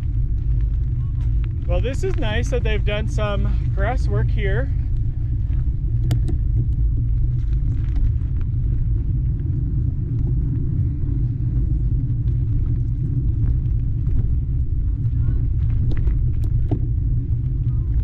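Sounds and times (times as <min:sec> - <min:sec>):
bike rolling on dirt: 0:00.0 - 0:18.0
wind on microphone: 0:00.0 - 0:18.0.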